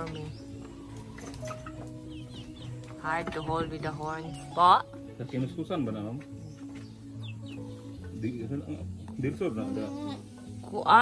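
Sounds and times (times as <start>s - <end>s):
background music: 0.0s - 11.0s
chickens clucking: 0.0s - 11.0s
small birds chirping: 0.0s - 11.0s.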